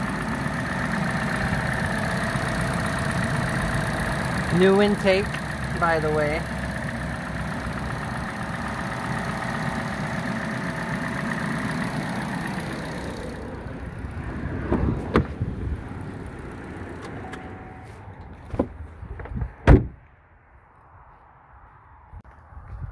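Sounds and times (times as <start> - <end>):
car engine idling: 0.0 - 19.3
loud thump: 18.5 - 20.0.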